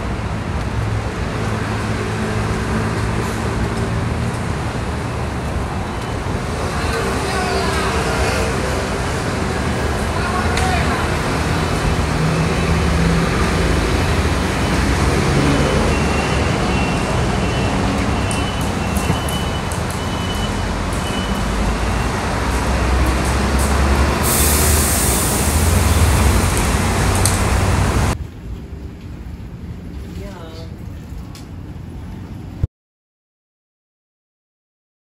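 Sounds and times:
vehicle engines running and passing: 0.0 - 32.6
bright hiss: 24.2 - 26.4.

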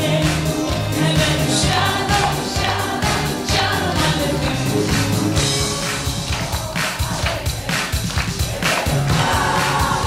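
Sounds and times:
pop backing track: 0.0 - 10.0.

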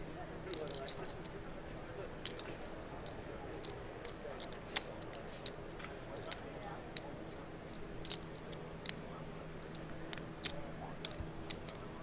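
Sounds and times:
steady low hum: 0.0 - 12.0
poker chips clicking: 0.5 - 1.4, 2.2 - 9.0, 9.6 - 12.0.

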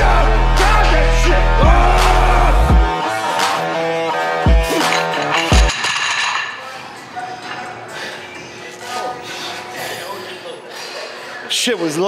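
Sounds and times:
background music: 0.0 - 6.4
faint voices: 6.5 - 12.0.

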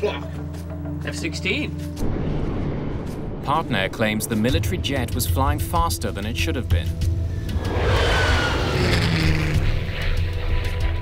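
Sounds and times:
aircraft whoosh with falling whine: 7.4 - 10.6.

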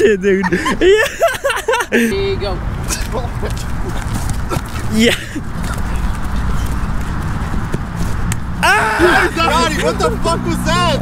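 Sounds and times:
wind buffeting microphone: 2.4 - 11.0
footfalls running on grass: 3.2 - 8.3.

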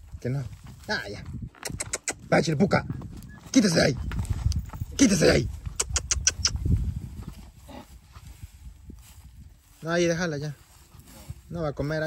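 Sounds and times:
hooves shuffling on dirt: 0.0 - 12.0.

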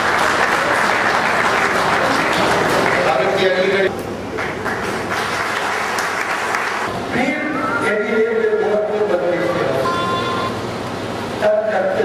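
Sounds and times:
audience clapping: 0.0 - 6.9
man speaking: 7.1 - 10.2.

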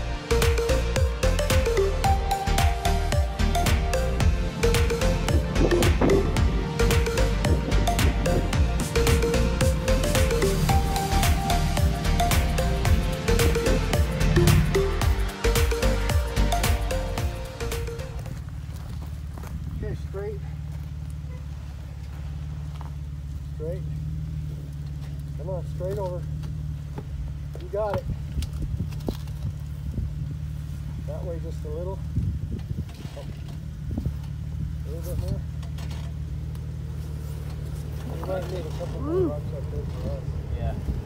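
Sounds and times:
car engine running low: 0.0 - 41.0.

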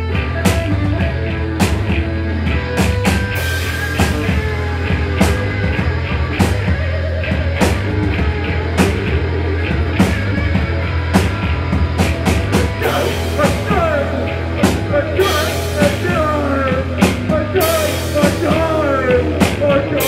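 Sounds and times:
bass guitar line: 0.0 - 20.0
electric guitar with pitch glides: 0.0 - 20.0.

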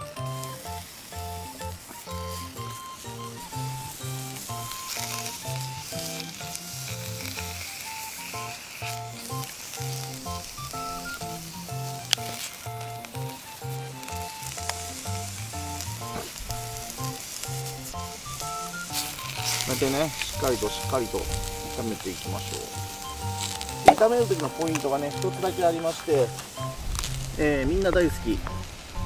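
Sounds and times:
cabbage sizzling in frying pan: 0.0 - 29.0.

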